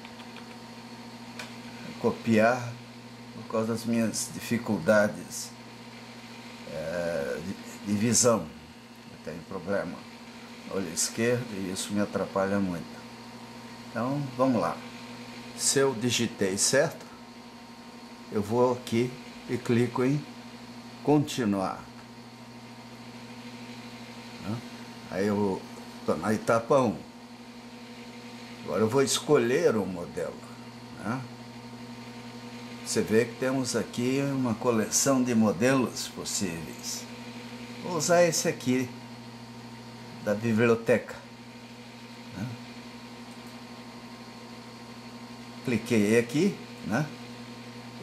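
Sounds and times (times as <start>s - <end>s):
low room hum: 0.0s - 48.0s.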